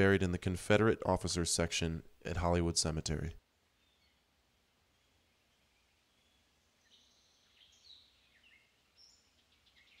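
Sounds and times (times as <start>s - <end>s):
faint bird chirps and whistles: 3.7s - 10.0s
bird trill: 4.9s - 10.0s.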